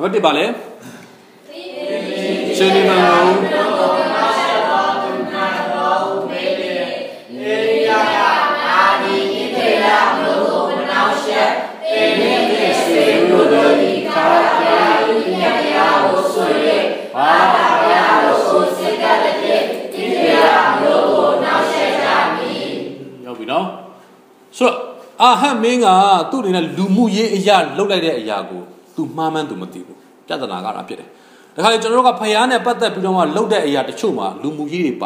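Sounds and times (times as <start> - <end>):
congregation speaking in unison: 1.4 - 35.0.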